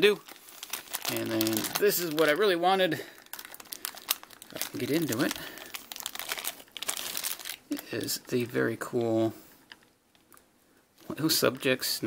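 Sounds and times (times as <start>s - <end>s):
plastic bag crinkling: 0.0s - 8.6s.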